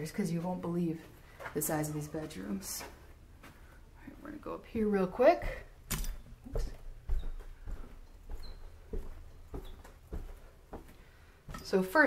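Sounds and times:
footsteps on carpeted stairs: 0.3s - 4.2s, 4.8s - 12.0s.

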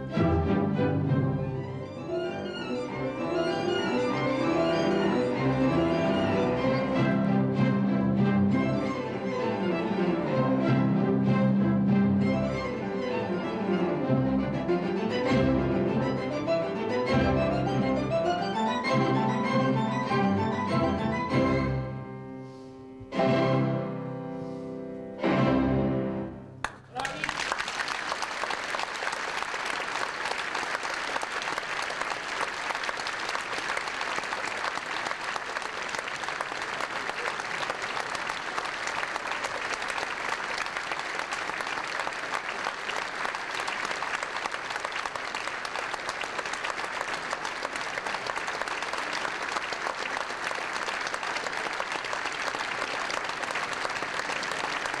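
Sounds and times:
audience applauding: 2.3s - 7.3s, 26.6s - 55.0s.

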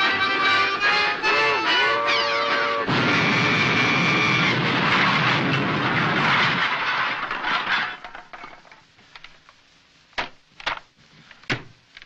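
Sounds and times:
cartoon crash clattering: 2.9s - 8.2s.

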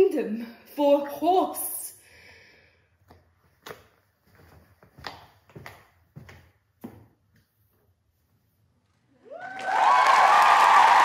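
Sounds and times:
slow hand claps: 9.4s - 11.0s.

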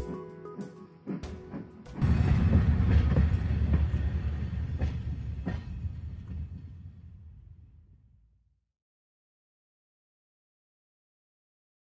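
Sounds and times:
train running on track: 1.2s - 8.0s.

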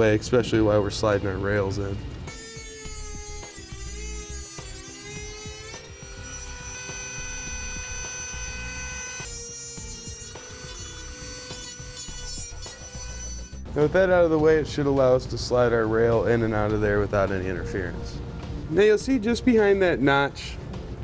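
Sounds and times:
rotary tool cutting sheet steel: 2.3s - 13.7s.

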